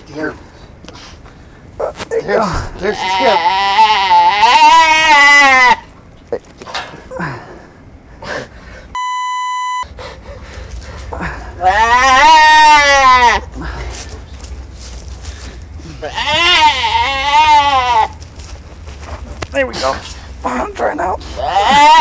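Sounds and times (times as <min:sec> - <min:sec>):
deer bleating in distress: 0:02.6 - 0:05.9, 0:11.2 - 0:13.6, 0:15.8 - 0:18.2, 0:21.2 - 0:22.0
short electronic beep: 0:09.0 - 0:09.9.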